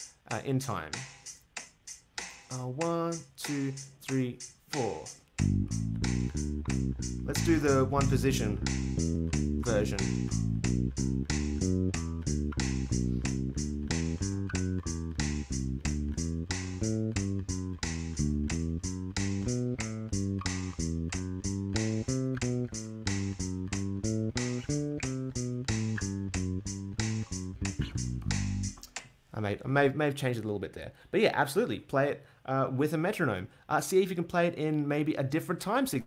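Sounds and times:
drum machine beat: 0:01.0 - 0:29.0
electric bass playing scale: 0:05.4 - 0:28.9.

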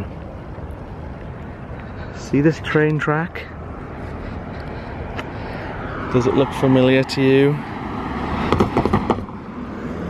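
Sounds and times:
vehicle driving past: 0:03.6 - 0:10.0.

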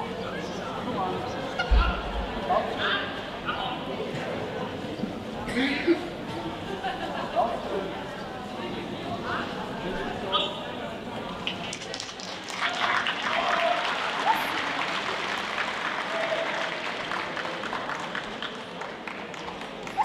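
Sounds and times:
scattered voices: 0:00.0 - 0:16.8
audience clapping: 0:11.3 - 0:20.0.

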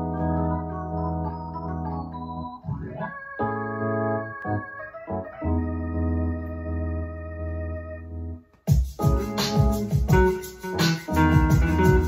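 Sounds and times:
organ-like keyboard chords: 0:00.0 - 0:12.0.

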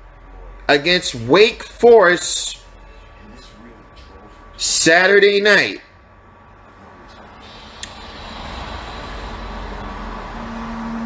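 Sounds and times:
vehicle passing: 0:00.0 - 0:11.0.

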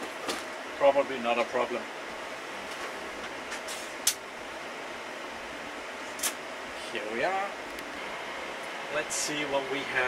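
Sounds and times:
server cooling fans whirring: 0:00.0 - 0:10.0.

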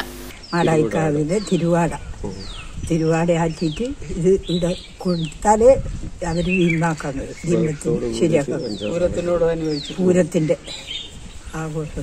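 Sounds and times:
woman talking: 0:00.5 - 0:02.0, 0:02.9 - 0:10.7, 0:11.5 - 0:12.0.

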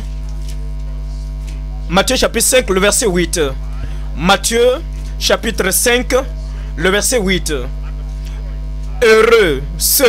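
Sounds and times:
buzzy electrical mains hum: 0:00.0 - 0:10.0.

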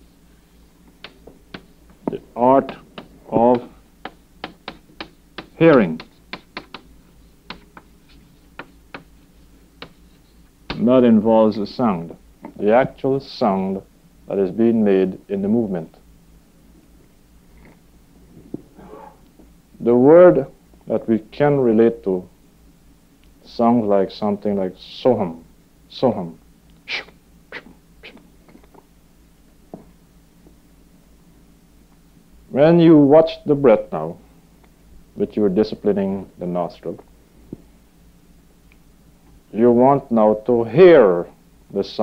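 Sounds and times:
low electrical hum: 0:00.0 - 0:42.0.

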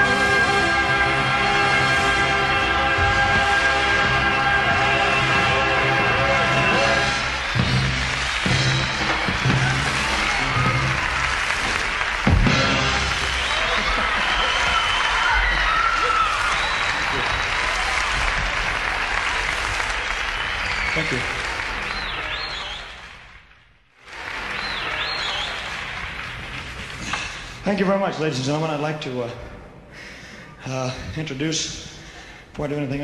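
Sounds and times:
audience applauding and cheering: 0:00.0 - 0:28.6.

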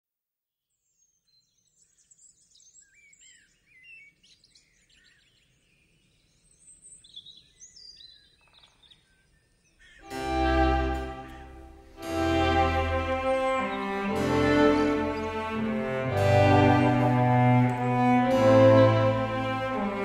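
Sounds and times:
birdsong chirps and whistles: 0:00.8 - 0:10.1.

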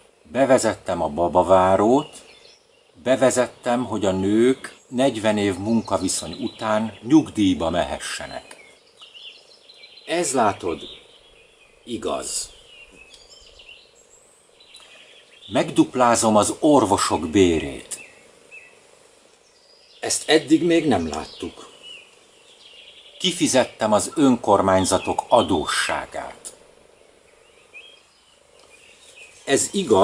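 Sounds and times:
outdoor background noise: 0:00.0 - 0:30.0
birds chirping and whistling: 0:01.7 - 0:17.0, 0:17.6 - 0:18.8, 0:19.4 - 0:26.3, 0:27.0 - 0:30.0.

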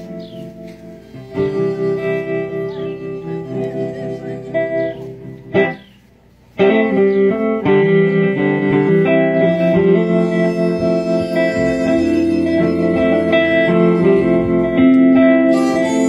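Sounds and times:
acoustic and electric guitars: 0:00.0 - 0:16.0.

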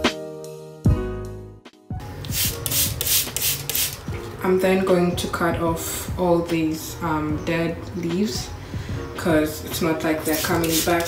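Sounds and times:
spray bottle squirts hissing: 0:02.2 - 0:04.1, 0:10.3 - 0:11.0.

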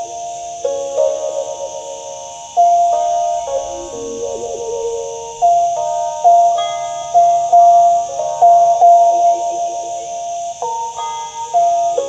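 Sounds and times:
plucked stick zither melody: 0:00.0 - 0:12.0.

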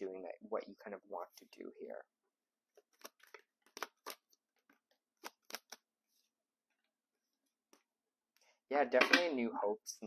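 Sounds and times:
cards snapping and rustling: 0:02.8 - 0:05.9.

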